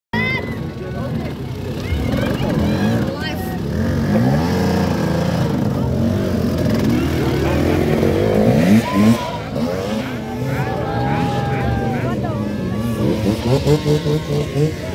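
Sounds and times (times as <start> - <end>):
people's voices: 0.2 - 14.9
dirt bike engine revving: 1.1 - 14.9.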